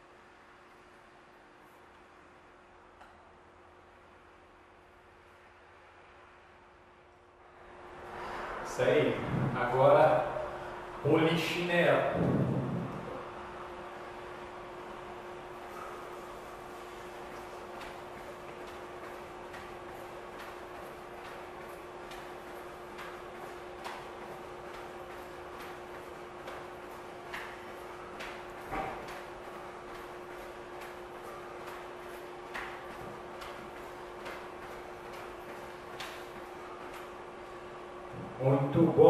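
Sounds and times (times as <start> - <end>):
steady hum and hiss: 0.0 - 39.0
sneakers landing on wooden floor: 12.2 - 13.1.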